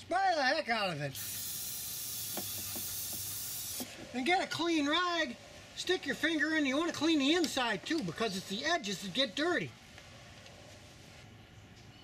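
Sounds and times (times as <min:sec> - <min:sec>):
aerosol spray hissing: 0:01.2 - 0:03.9.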